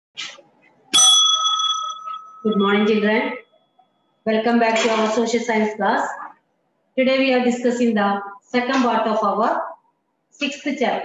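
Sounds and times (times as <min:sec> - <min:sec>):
bell strike ringing: 0:01.0 - 0:03.2.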